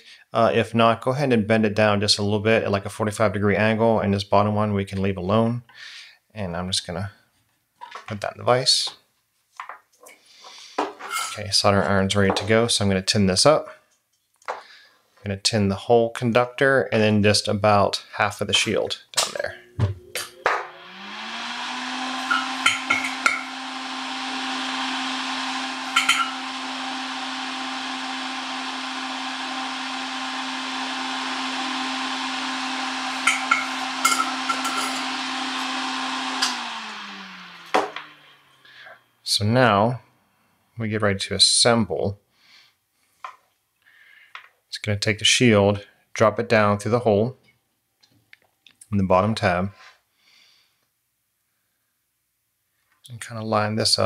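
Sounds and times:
tools set down: 0:10.8 - 0:11.4, 0:26.0 - 0:26.4, 0:33.2 - 0:35.1
small fan humming: 0:19.3 - 0:38.8.

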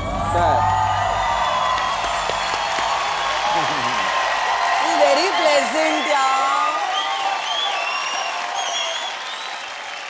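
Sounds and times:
audience cheering and applauding: 0:00.0 - 0:10.0.

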